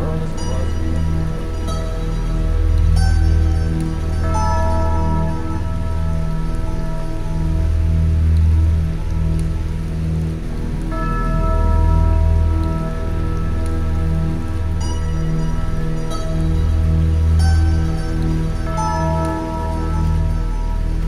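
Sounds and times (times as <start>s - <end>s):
high sustained synth tones: 0.0s - 21.0s
hissing rain-like noise: 0.0s - 21.0s
low synth notes: 0.0s - 21.0s.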